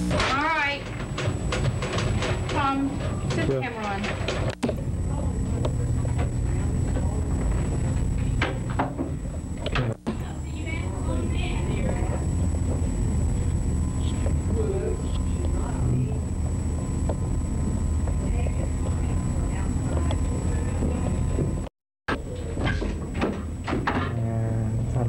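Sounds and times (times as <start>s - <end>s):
heavy low hum: 0.0s - 22.6s, 24.0s - 25.0s
steady high whine: 0.0s - 25.0s
muffled voices: 4.9s - 21.5s, 23.9s - 25.0s.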